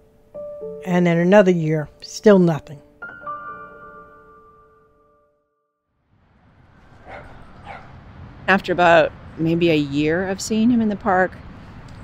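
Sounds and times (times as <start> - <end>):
outdoor ambience: 6.0 - 12.0
dog barking: 7.0 - 8.0.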